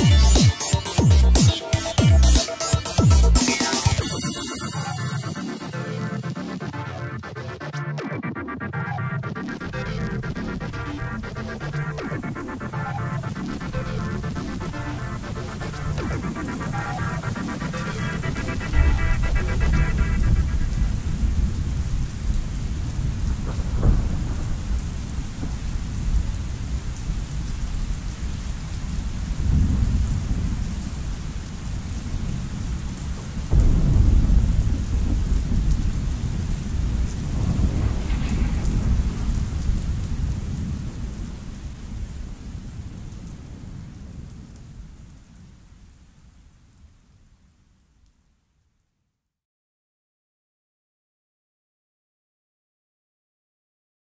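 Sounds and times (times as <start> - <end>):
steady rain: 0.0 - 48.8
thunder rolling: 9.2 - 45.5.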